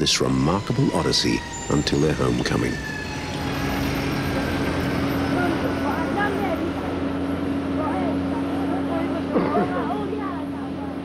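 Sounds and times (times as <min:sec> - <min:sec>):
people talking: 0:00.0 - 0:02.8, 0:05.3 - 0:07.1, 0:07.8 - 0:11.0
propeller aircraft engines humming: 0:00.0 - 0:11.0.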